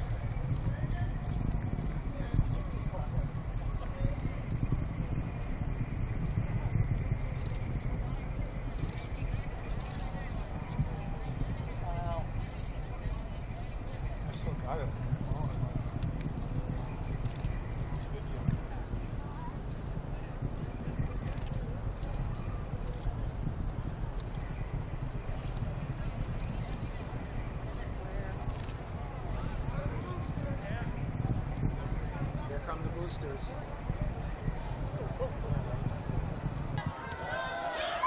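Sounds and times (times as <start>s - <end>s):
murmur of onlookers talking: 0.0s - 38.0s
steady low rumble: 0.0s - 38.0s.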